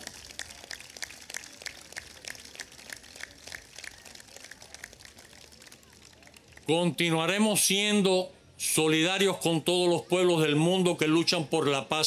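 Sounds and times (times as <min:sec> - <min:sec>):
scattered applause: 0:00.0 - 0:07.0.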